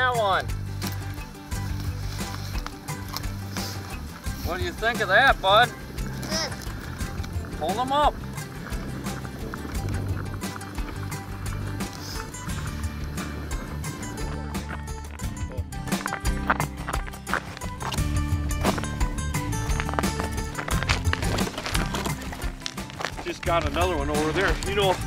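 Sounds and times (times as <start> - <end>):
background music with held notes: 0.0 - 25.0
steady percussive beat: 0.0 - 25.0.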